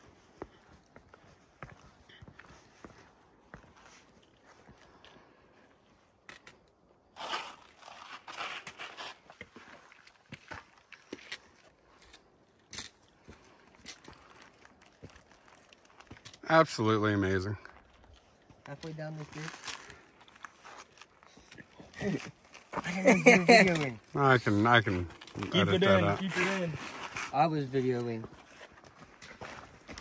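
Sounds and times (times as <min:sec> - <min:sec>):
footsteps on rocky dirt trail: 0:00.0 - 0:05.2, 0:07.3 - 0:16.2, 0:25.0 - 0:30.0.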